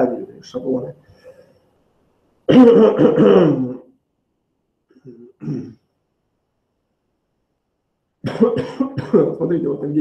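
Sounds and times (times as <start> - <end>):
man clearing his throat: 2.5 - 3.9, 5.0 - 5.8, 8.2 - 9.4.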